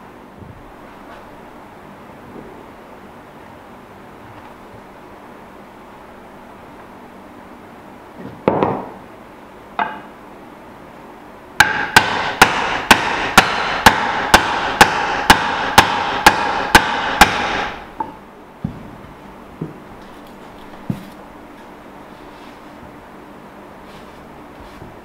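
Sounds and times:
mallet knocking wooden joint: 11.6s - 18.1s.

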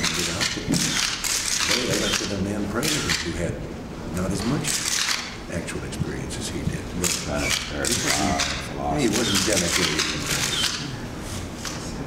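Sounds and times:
camera shutters clicking: 0.0s - 3.3s, 4.7s - 5.3s, 7.0s - 10.8s.

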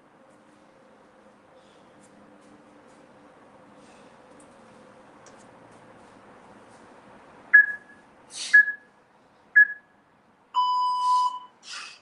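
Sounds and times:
short high timer beeps: 10.6s - 11.5s
long low timer beep: 10.6s - 11.6s.

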